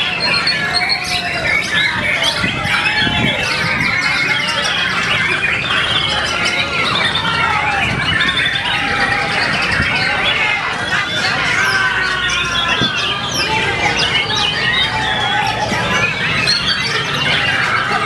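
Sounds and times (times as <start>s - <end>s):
murmuring crowd voices: 0.0s - 18.0s.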